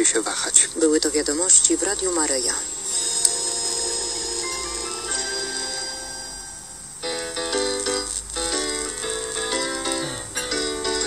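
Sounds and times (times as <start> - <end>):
radio jingle held chords: 0.4 - 7.9.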